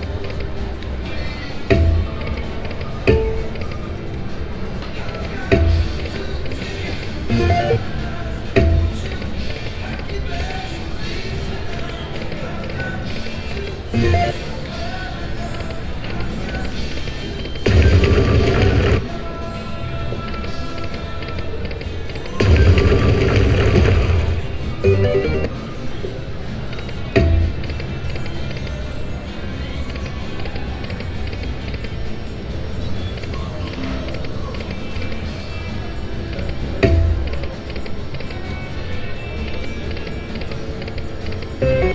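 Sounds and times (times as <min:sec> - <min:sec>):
slot machine electronic music: 0:01.7 - 0:09.4, 0:13.9 - 0:14.7, 0:17.7 - 0:19.1, 0:22.4 - 0:25.8, 0:27.2 - 0:28.6, 0:36.6 - 0:41.9
slot machine win jingles: 0:07.3 - 0:08.0, 0:14.0 - 0:14.5, 0:22.4 - 0:25.5, 0:41.5 - 0:41.9.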